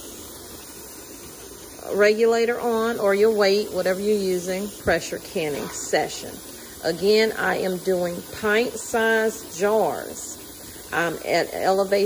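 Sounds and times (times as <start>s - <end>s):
steam hissing from vent pipe: 0.0s - 12.0s.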